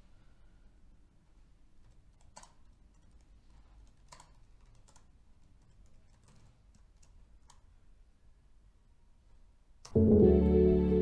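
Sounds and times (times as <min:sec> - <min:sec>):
typing on laptop keyboard: 0:01.8 - 0:07.7.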